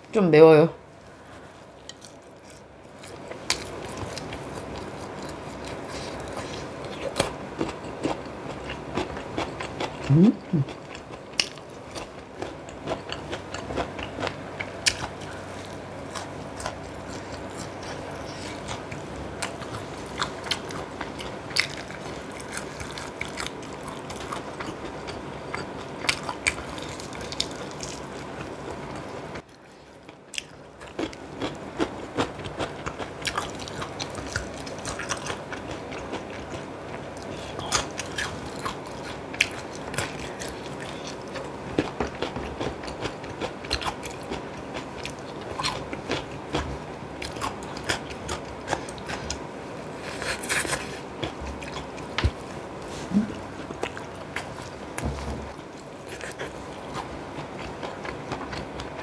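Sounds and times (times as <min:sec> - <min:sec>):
chewing with crunches: 0:01.6 - 0:59.0.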